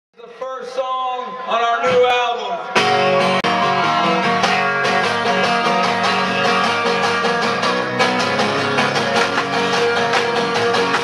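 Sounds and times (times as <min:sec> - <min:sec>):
guitar: 0:01.3 - 0:11.0
banjo: 0:02.8 - 0:11.0
upright bass: 0:02.8 - 0:11.0.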